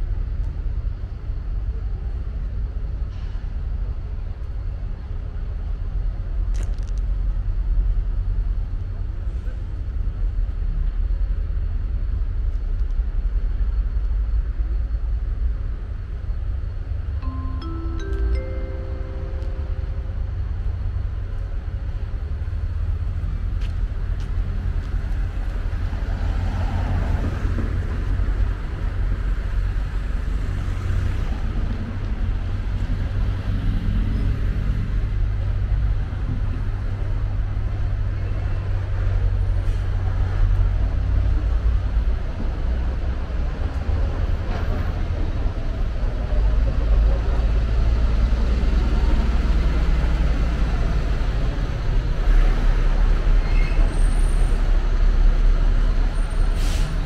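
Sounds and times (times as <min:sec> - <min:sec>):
traffic rumble: 0:00.0 - 0:57.0.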